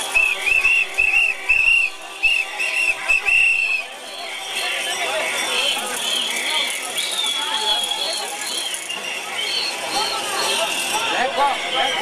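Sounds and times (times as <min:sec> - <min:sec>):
crowd noise: 0:00.0 - 0:12.0
whistle blasts: 0:00.0 - 0:12.0.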